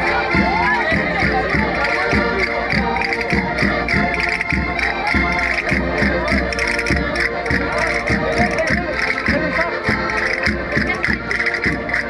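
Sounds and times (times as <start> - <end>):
accordions playing folk dance tune: 0.0 - 12.0
voices: 0.0 - 12.0.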